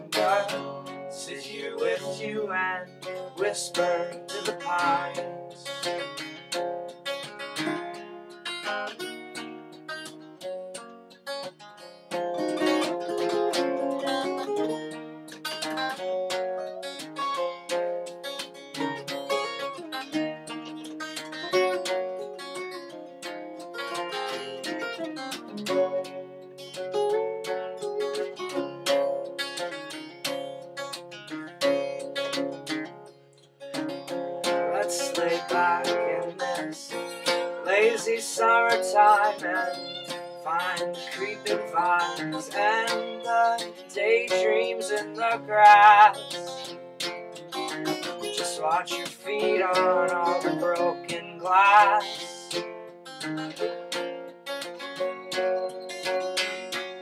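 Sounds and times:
acoustic guitars picked and strummed: 0:00.0 - 0:57.0.

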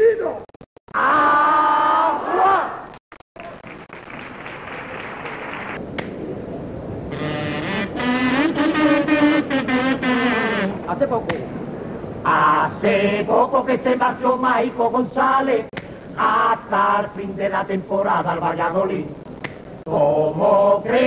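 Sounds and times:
audience applauding: 0:03.4 - 0:05.8
wavering pitched tone: 0:07.1 - 0:10.8.

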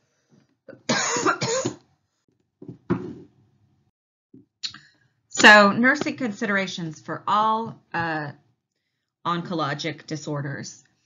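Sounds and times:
woman coughing: 0:00.7 - 0:01.8.

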